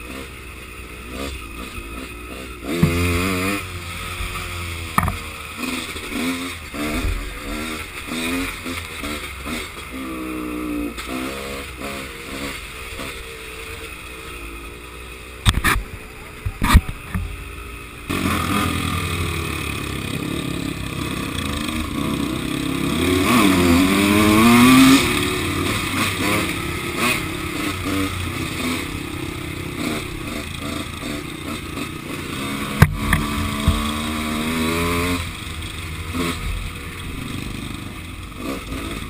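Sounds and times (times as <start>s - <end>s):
dirt bike engine revving: 0.0s - 39.0s
sharp knocks: 2.7s - 3.3s, 4.9s - 5.2s.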